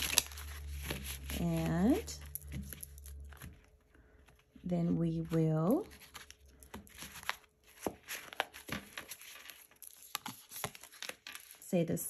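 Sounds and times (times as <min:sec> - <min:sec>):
cards being shuffled: 0:00.0 - 0:04.6, 0:05.2 - 0:11.6.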